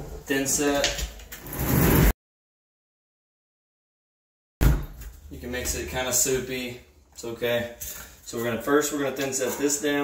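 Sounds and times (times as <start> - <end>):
scraping noise: 1.4 - 2.2.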